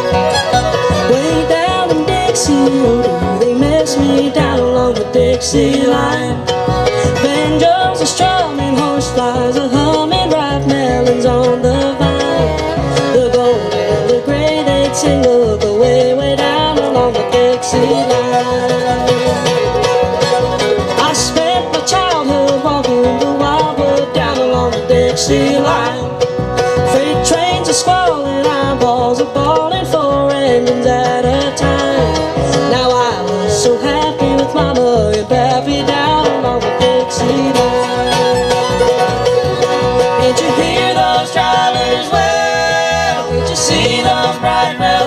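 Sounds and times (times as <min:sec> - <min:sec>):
bluegrass band playing: 0:00.0 - 0:45.0.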